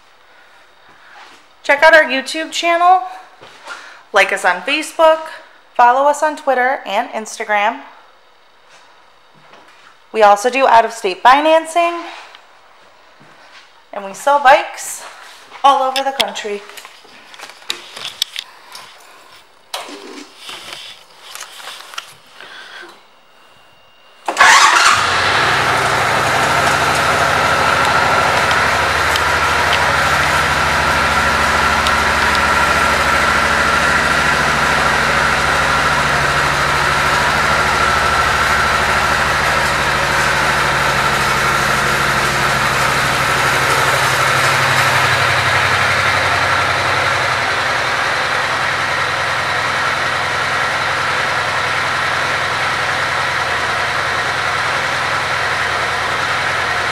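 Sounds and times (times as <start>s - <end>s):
motorcycle engine starting and idling: 24.2s - 56.9s.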